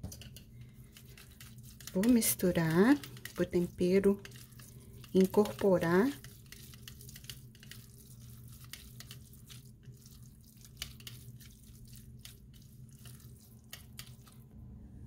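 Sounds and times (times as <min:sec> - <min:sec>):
spatula stirring wet food: 0:00.0 - 0:14.5.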